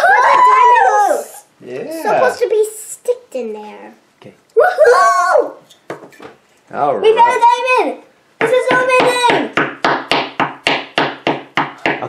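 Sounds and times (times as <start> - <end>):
child cheering: 0.0 - 1.5, 4.6 - 5.6, 7.1 - 9.5
wooden mallet tapping on plaster: 8.4 - 12.0.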